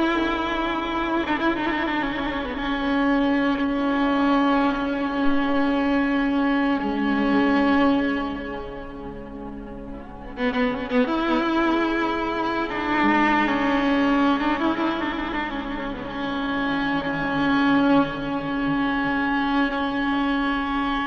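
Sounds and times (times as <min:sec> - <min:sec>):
solo violin sliding notes: 0:00.0 - 0:21.0.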